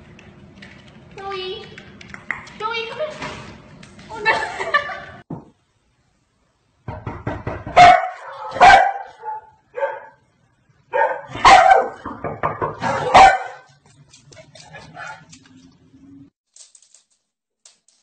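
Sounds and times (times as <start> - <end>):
dog barking loudly: 7.7 - 10.2, 10.9 - 12.1, 12.7 - 13.7.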